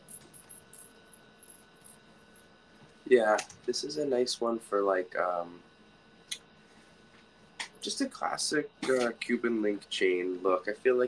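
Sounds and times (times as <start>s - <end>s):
chain necklace links clinking: 0.0s - 2.4s.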